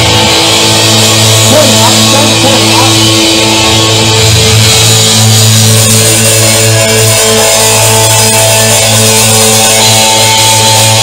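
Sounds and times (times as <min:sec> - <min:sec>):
bass: 0:00.0 - 0:11.0
drums: 0:00.0 - 0:11.0
electric guitar chords: 0:00.0 - 0:11.0.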